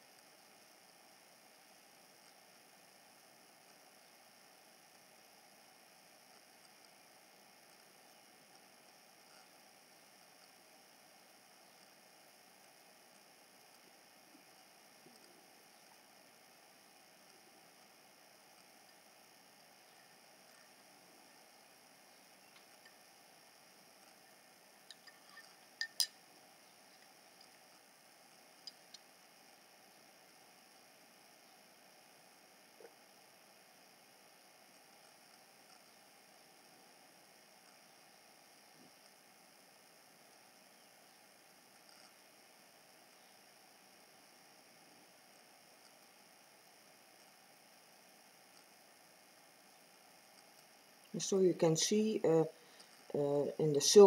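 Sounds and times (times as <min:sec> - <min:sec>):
faint steady hiss: 0:00.0 - 0:54.0.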